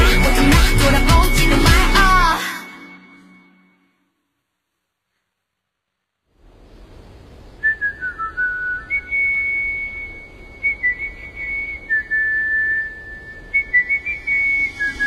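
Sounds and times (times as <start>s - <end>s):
soft hiss: 4.2s - 15.0s
whistled melody: 7.6s - 15.0s.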